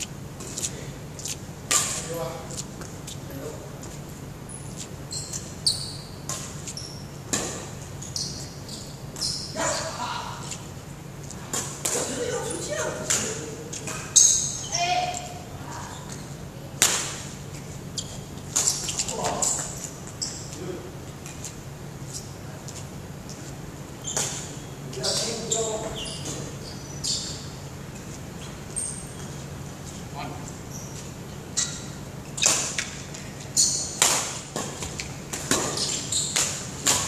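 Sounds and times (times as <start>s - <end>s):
sneakers squeaking: 0.0s - 37.0s
racket hitting shuttlecock: 1.7s - 2.1s, 7.3s - 7.8s, 16.8s - 17.3s, 33.8s - 37.0s.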